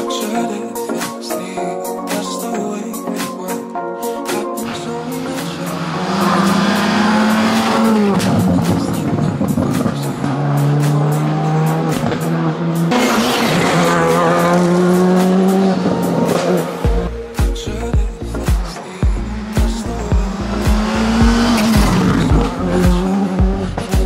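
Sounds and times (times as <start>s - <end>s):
rally car engine revving hard: 5.0s - 16.8s, 19.2s - 24.0s.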